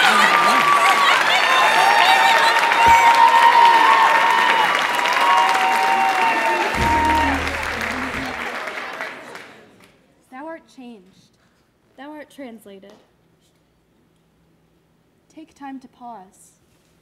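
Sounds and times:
high whoops: 0:00.0 - 0:08.5
audience applauding and cheering: 0:00.0 - 0:09.7.

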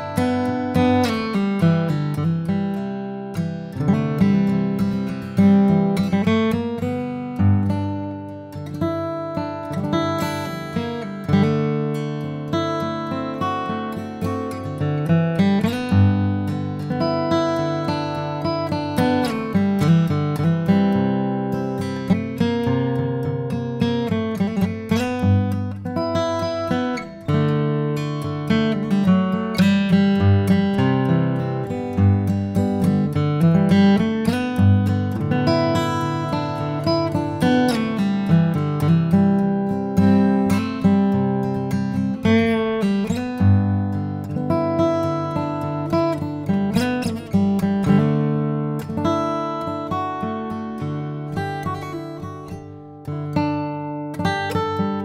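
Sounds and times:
acoustic guitar picked and strummed: 0:00.0 - 0:55.0.

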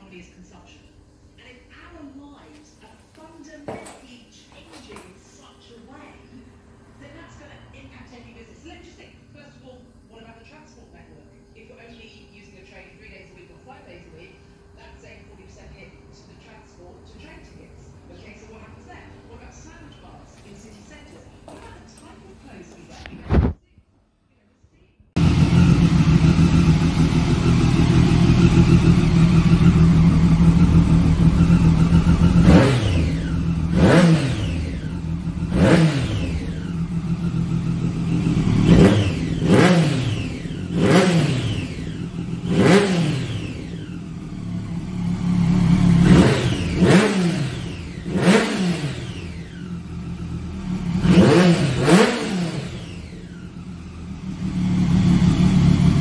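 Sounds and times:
motorcycle engine idling and revving: 0:25.2 - 0:56.0.

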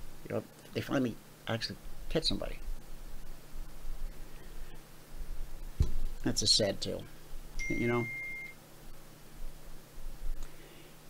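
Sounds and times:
faint low hum: 0:00.0 - 0:11.0
high-pitched electronic beep: 0:07.6 - 0:08.6.

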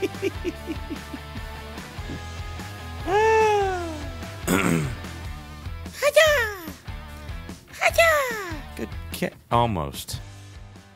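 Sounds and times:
background music: 0:00.0 - 0:10.9.

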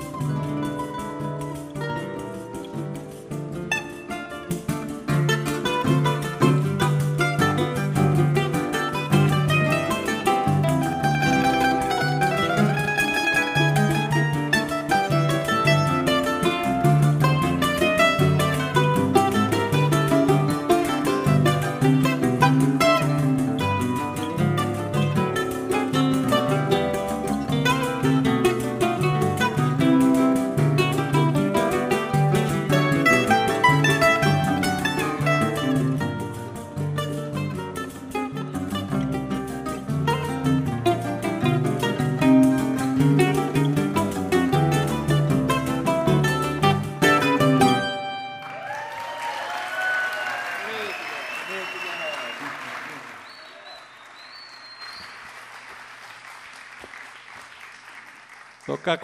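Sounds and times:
plucked mandolin melody: 0:00.0 - 0:48.6
acoustic guitars: 0:00.0 - 0:48.9.

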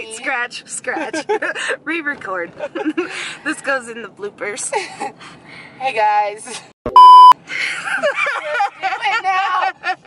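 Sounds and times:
women talking: 0:00.0 - 0:02.8, 0:03.4 - 0:05.0, 0:08.4 - 0:09.9
women laughing: 0:01.0 - 0:01.7, 0:02.6 - 0:03.2, 0:07.5 - 0:10.0
test-tone beep: 0:06.9 - 0:07.4.

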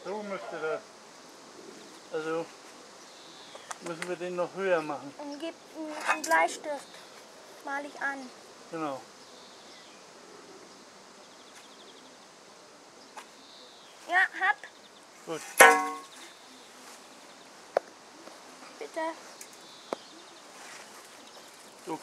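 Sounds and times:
metallic clang ringing: 0:15.5 - 0:16.2
small knocks: 0:15.5 - 0:16.2.

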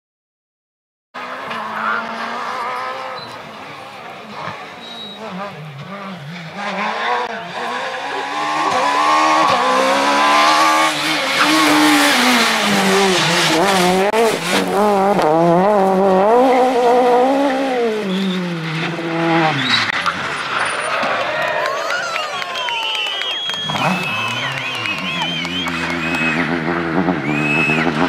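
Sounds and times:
rally car engine revving: 0:01.2 - 0:21.3, 0:23.3 - 0:28.0.

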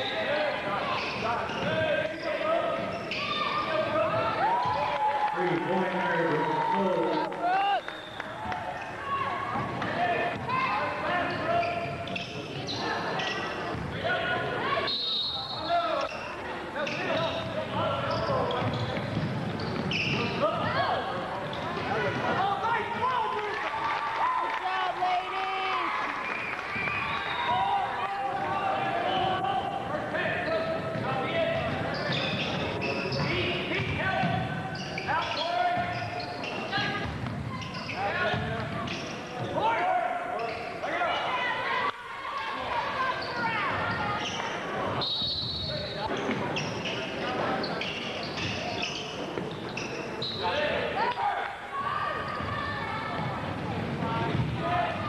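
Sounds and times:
sneaker squeaks: 0:00.0 - 0:04.3, 0:10.3 - 0:13.9, 0:14.7 - 0:22.0, 0:30.2 - 0:39.7, 0:40.3 - 0:41.4, 0:42.8 - 0:50.7, 0:52.0 - 0:55.0
people shouting and chattering: 0:00.0 - 0:55.0
basketball bouncing: 0:18.5 - 0:20.7, 0:30.8 - 0:32.6, 0:37.0 - 0:37.6, 0:52.4 - 0:54.6.

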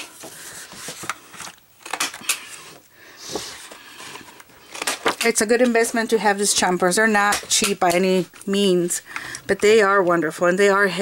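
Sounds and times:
paper rustling: 0:00.0 - 0:02.6.

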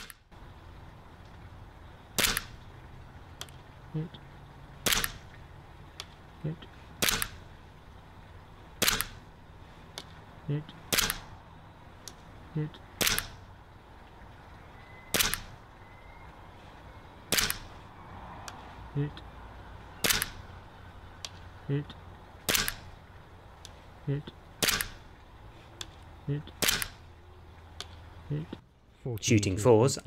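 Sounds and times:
airsoft pistol shots: 0:02.2 - 0:02.6, 0:04.8 - 0:05.2, 0:07.0 - 0:07.4, 0:08.8 - 0:09.2, 0:10.9 - 0:11.3, 0:13.0 - 0:13.4, 0:15.1 - 0:15.5, 0:17.3 - 0:17.7, 0:20.0 - 0:20.4, 0:22.4 - 0:22.9, 0:24.6 - 0:25.0, 0:26.6 - 0:27.0.

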